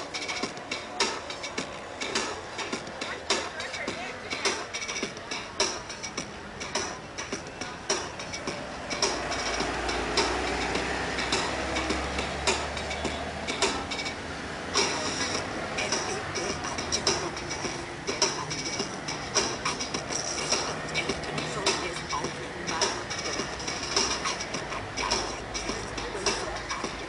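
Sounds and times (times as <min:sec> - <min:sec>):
sharp repeating beat: 0:00.0 - 0:27.0
street traffic: 0:00.0 - 0:27.0
heavy vehicle rumbling past: 0:07.8 - 0:26.0.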